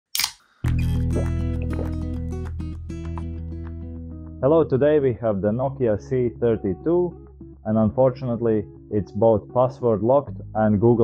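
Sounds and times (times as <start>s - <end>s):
loud bass-heavy music: 0.7s - 3.4s.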